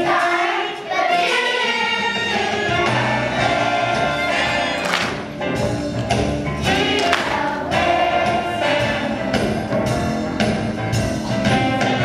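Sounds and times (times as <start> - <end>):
children's choir singing: 0.0 - 5.3, 6.6 - 9.7, 11.3 - 12.0.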